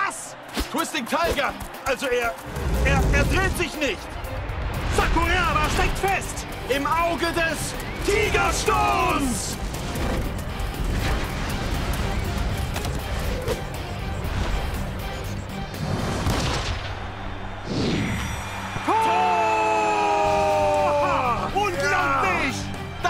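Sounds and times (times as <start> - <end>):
cartoon action music: 1.2 - 23.0
long held shout: 18.9 - 21.5.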